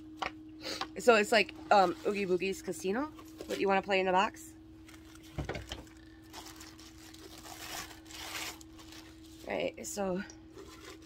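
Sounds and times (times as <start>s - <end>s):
packaging rustling: 4.8s - 9.5s, 10.5s - 11.0s.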